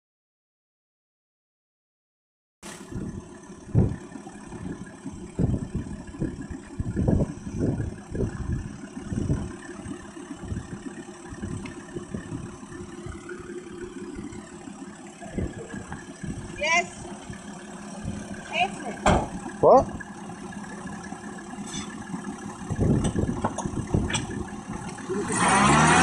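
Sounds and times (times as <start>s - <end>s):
vehicle engine rumbling: 2.6s - 26.0s.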